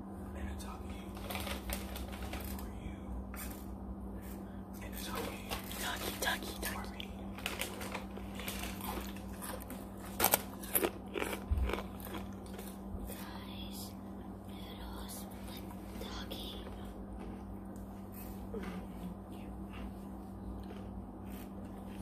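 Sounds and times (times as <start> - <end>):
steady low hum: 0.0 - 22.0
chewing with wet clicks: 8.8 - 12.8, 20.5 - 22.0.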